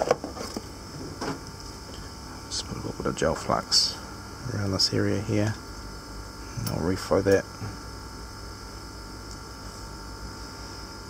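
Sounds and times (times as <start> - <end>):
steady machine hum: 0.0 - 11.0.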